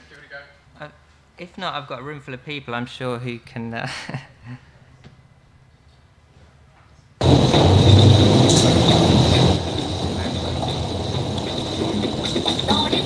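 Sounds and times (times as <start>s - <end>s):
loud noisy rumble: 7.2s - 13.0s
steady noise: 7.2s - 13.0s
thin high whine: 7.2s - 13.0s.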